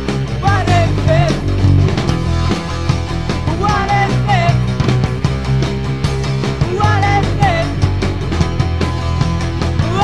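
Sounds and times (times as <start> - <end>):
punk rock song: 0.0 - 10.0
person singing: 0.4 - 1.7, 3.4 - 4.6, 6.6 - 7.8.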